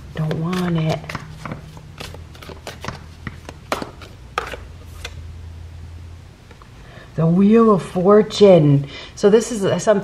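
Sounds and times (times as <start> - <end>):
low steady hum: 0.0 - 10.0
cards snapping and tapping: 0.2 - 5.2.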